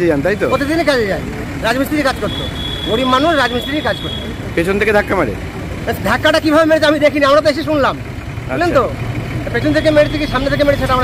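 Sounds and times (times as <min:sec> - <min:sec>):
men talking: 0:00.0 - 0:11.0
roadway traffic noise: 0:00.0 - 0:11.0.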